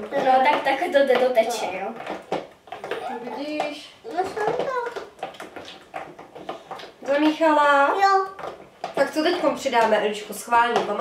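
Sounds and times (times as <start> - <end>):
spoons stirring slime in plastic tubs: 0.0 - 11.0
young child talking: 2.9 - 5.1, 7.9 - 8.4.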